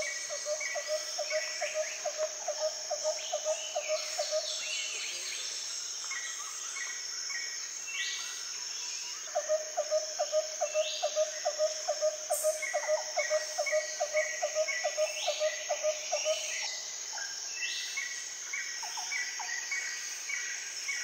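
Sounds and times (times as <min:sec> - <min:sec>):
insects trilling: 0:00.0 - 0:21.0.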